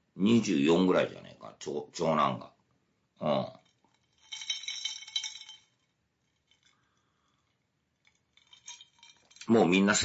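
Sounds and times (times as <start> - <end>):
glass ringing: 3.6 - 5.9, 8.4 - 9.5
ice clinking in a glass: 4.1 - 5.8, 8.3 - 9.8.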